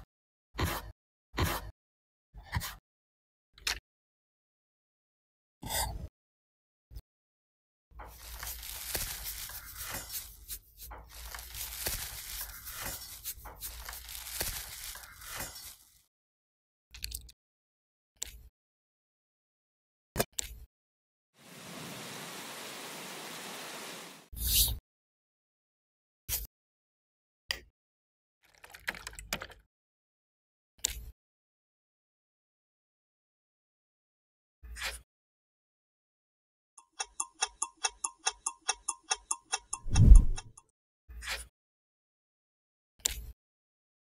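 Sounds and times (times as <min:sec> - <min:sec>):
clock ticking: 0:36.8 - 0:40.5
brief swish: 0:39.9 - 0:40.4.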